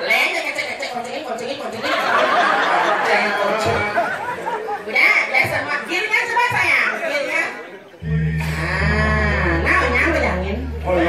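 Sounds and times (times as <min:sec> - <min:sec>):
person singing long note: 0:08.0 - 0:09.9
steady low hum: 0:08.0 - 0:11.0.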